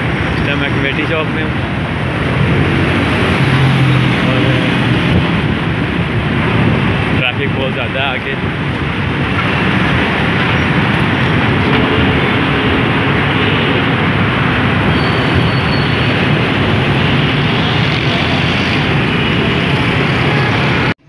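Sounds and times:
road and traffic noise: 0:00.0 - 0:21.0.

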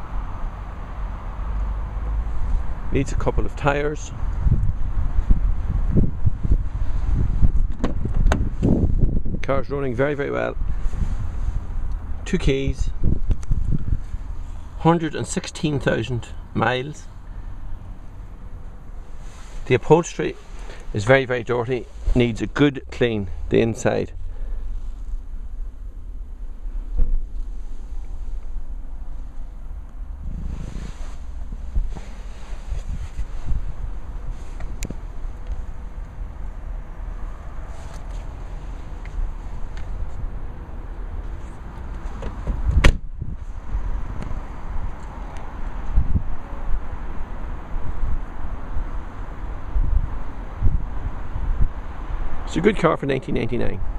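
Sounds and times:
wind rumbling on microphone: 0:00.0 - 0:52.6
microphone handling knocks: 0:07.5 - 0:08.8, 0:42.2 - 0:43.1
car door shutting: 0:07.6 - 0:08.7, 0:42.0 - 0:43.1.

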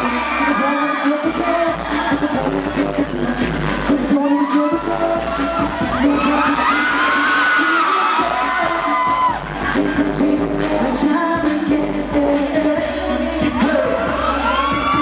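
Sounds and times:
fans cheering and whooping: 0:00.0 - 0:15.0
pop song over concert pa: 0:00.0 - 0:15.0.

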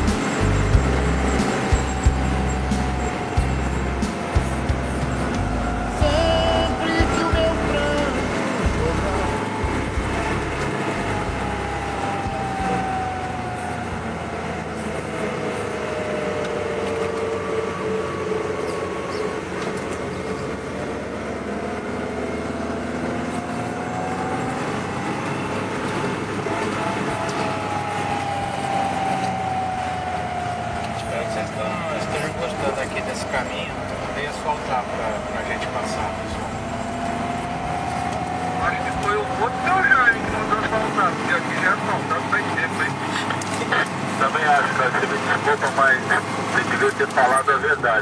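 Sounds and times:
car engine rumbling inside cabin: 0:00.0 - 0:48.0
drivetrain whine: 0:00.0 - 0:48.0.

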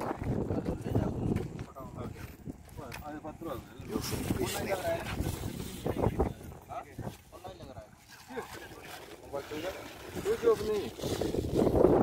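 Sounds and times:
people talking: 0:00.0 - 0:11.2
wind rumbling on microphone: 0:00.0 - 0:12.0.

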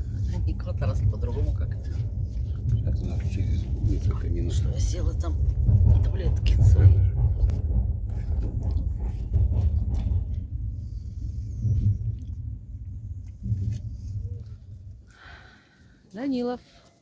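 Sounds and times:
train rumbling on rails: 0:00.0 - 0:15.1.

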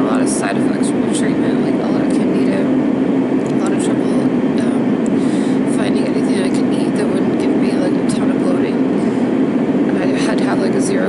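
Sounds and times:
loud low hum: 0:00.0 - 0:11.0.

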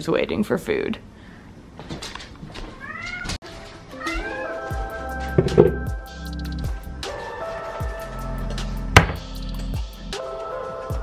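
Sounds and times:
cat meowing: 0:02.6 - 0:03.4
background music: 0:03.4 - 0:11.0.

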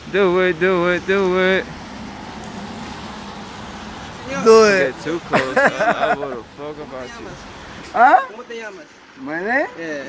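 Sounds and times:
traffic on wet road: 0:00.0 - 0:10.0.

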